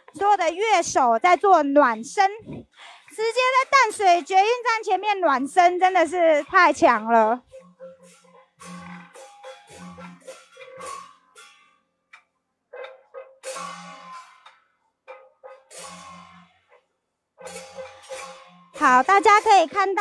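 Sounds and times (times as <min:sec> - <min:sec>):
drum beats: 0:00.0 - 0:11.0, 0:17.5 - 0:20.0
gongs and cymbals ringing: 0:07.5 - 0:11.5, 0:13.4 - 0:14.3, 0:17.4 - 0:20.0.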